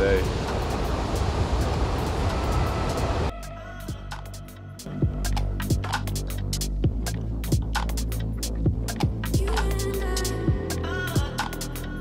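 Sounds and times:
electronic music with sharp beats: 0.1s - 11.9s.

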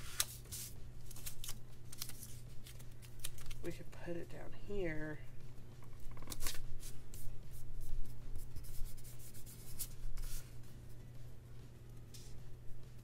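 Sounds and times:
paper stickers rustling and scraping: 0.0s - 3.7s, 6.0s - 10.6s.

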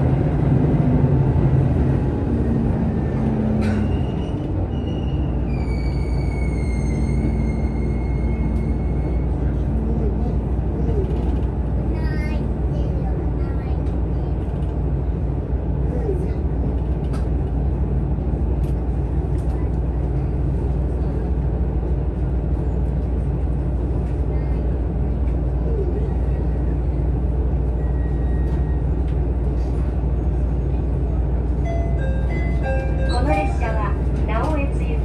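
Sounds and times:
railcar rumble: 0.0s - 35.0s.

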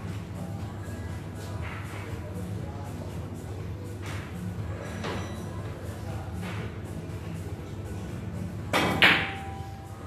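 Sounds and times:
cue striking ball: 8.7s - 9.6s
pool balls clacking: 8.7s - 9.6s.

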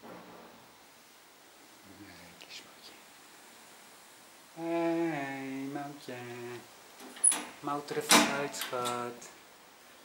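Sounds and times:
faint room hiss: 0.0s - 10.0s
person whispering: 1.9s - 3.0s.

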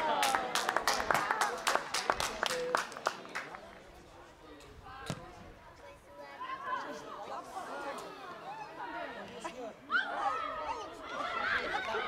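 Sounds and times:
ball kick: 5.0s - 5.4s
players and spectators shouting: 6.4s - 12.0s.

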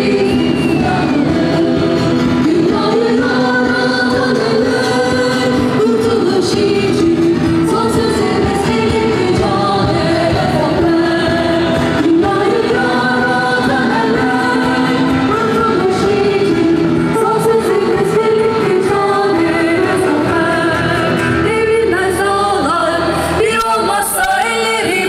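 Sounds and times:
crowd singing together: 0.0s - 25.0s
music: 0.0s - 25.0s.

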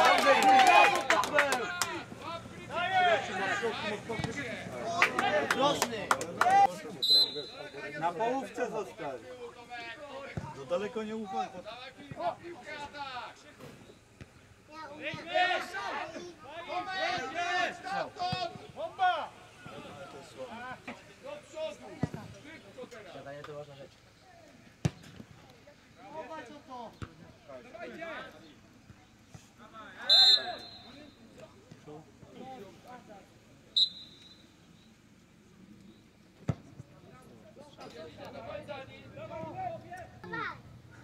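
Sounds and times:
players shouting: 0.0s - 13.5s, 14.9s - 23.0s, 29.8s - 31.4s
referee's whistle blasts: 7.0s - 7.8s, 30.0s - 31.2s, 33.8s - 34.6s
ball being kicked: 24.8s - 25.3s.

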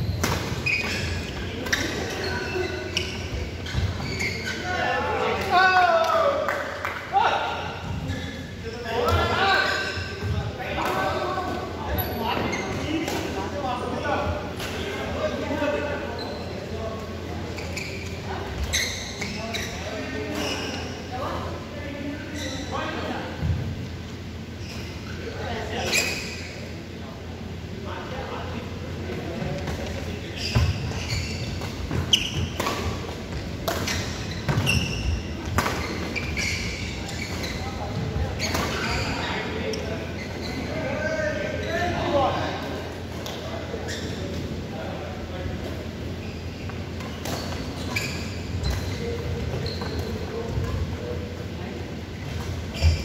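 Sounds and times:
voices around court: 0.0s - 53.0s.

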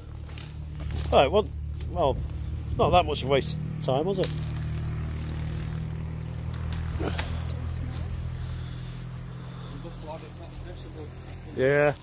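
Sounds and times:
low hum: 0.0s - 11.6s.

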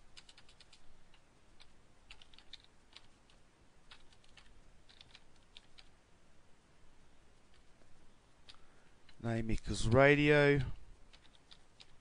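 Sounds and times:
keyboard typing: 0.1s - 6.0s, 11.1s - 12.0s.

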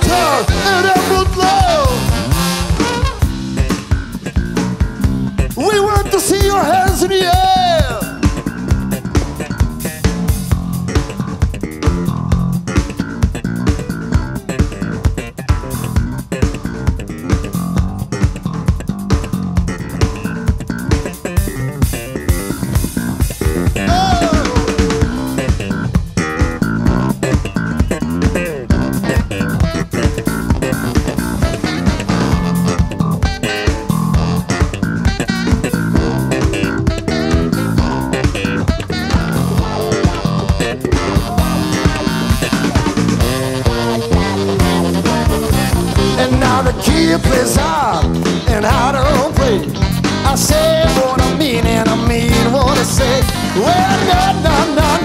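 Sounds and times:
baritone saxophone: 0.0s - 10.0s, 21.4s - 55.0s
live blues band playing: 0.0s - 55.0s.

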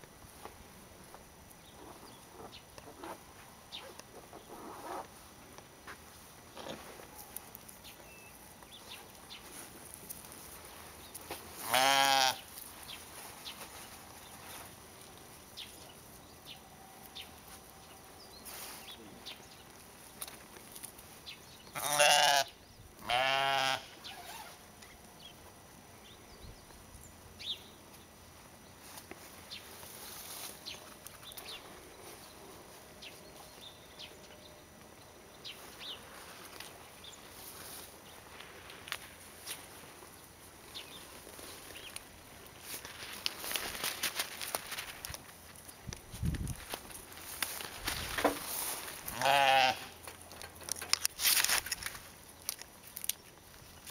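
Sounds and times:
sheep bleating: 11.6s - 12.4s, 21.8s - 24.0s, 49.1s - 50.0s.

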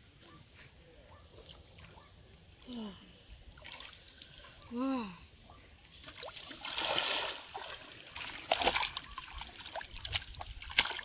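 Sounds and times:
hands splashing in shallow water: 6.2s - 11.0s.

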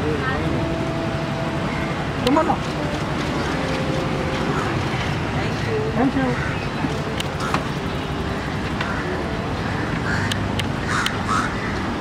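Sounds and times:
street traffic noise: 0.0s - 12.0s.

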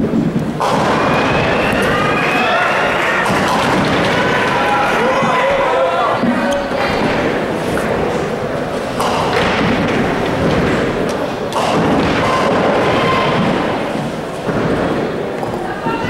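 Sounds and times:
balls crashing into pins: 0.0s - 15.6s
bowling balls rolling: 0.0s - 15.9s
heavy thuds: 6.2s - 16.0s.

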